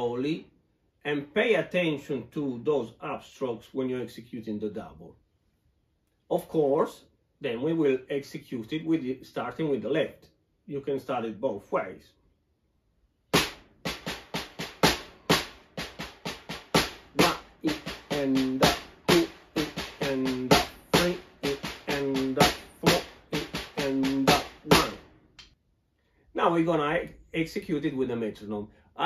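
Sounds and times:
snare drum roll: 13.3s - 25.1s.

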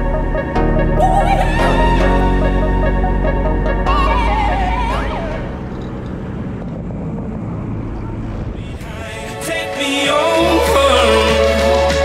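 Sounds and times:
light aircraft engine drone: 4.3s - 9.1s
wind noise: 5.4s - 9.7s.

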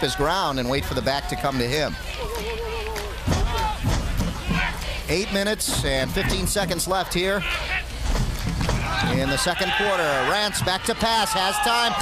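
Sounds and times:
football crowd and field noise: 0.0s - 12.0s
indistinct voices: 0.0s - 12.0s.

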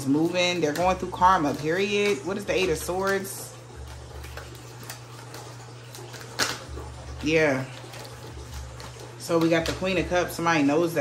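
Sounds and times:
cards being shuffled: 0.2s - 7.0s.

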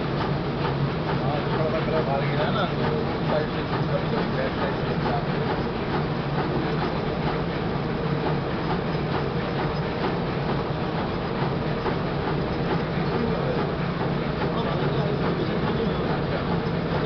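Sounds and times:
machine rollers humming: 0.0s - 17.0s.

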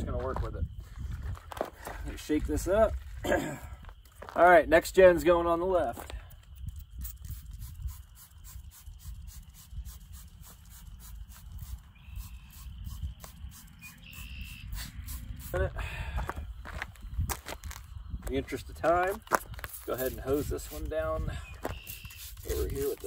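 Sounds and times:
wind rumble on microphone: 0.0s - 3.8s, 6.1s - 23.0s.

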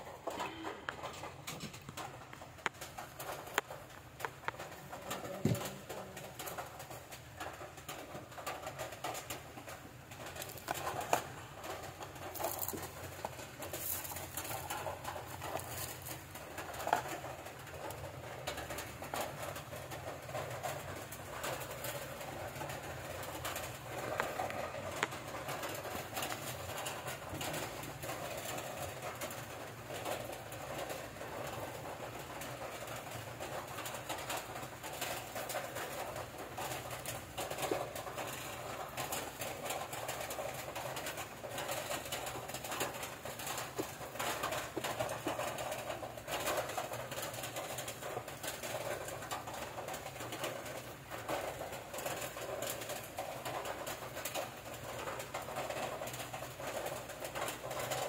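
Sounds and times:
steady room noise: 0.0s - 58.0s.

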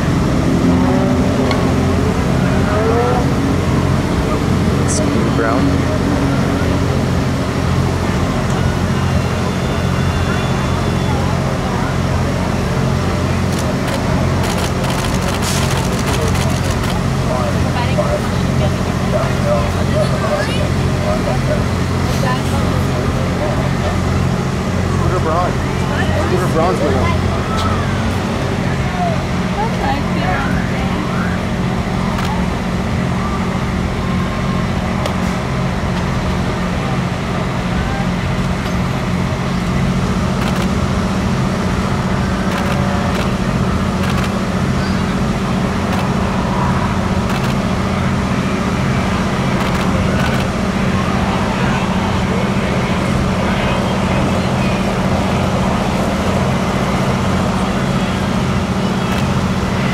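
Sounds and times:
engine droning: 0.0s - 59.9s.

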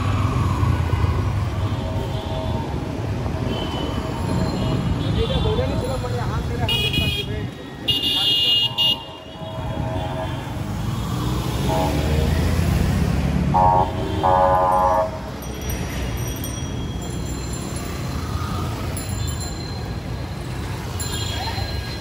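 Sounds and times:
vehicle horns honking: 6.7s - 10.5s, 13.5s - 15.2s.

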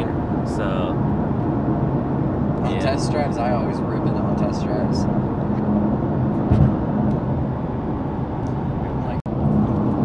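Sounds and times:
car engine drone: 0.0s - 10.0s
road and tyre noise: 0.0s - 10.0s.

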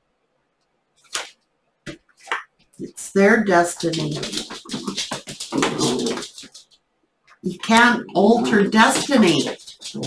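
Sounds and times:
dog making rough vocal sounds: 4.2s - 6.6s.

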